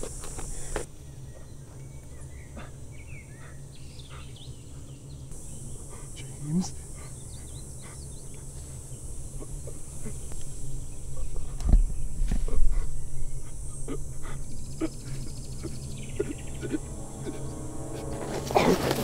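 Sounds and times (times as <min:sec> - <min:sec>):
man breathing and groaning: 0:12.4 - 0:19.0.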